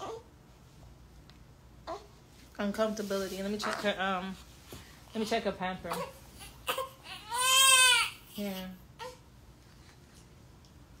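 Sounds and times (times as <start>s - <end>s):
baby whimpering: 0.0s - 0.3s
baby crying: 5.9s - 8.4s.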